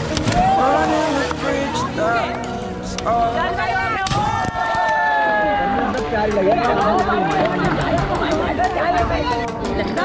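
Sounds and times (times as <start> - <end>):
young men chattering and calling: 5.3 - 10.0.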